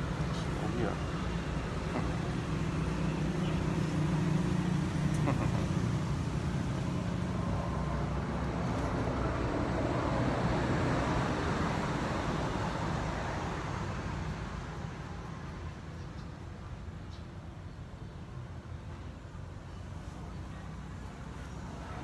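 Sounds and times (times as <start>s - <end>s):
vehicle engine rumbling: 0.0s - 14.0s.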